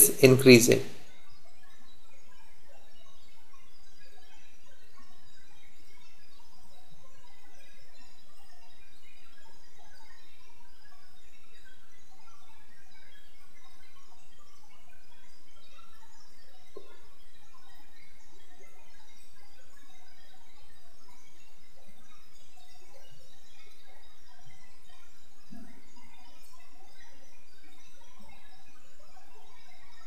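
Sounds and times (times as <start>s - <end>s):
steady background hiss: 0.0s - 1.3s
faint chirps: 0.0s - 30.0s.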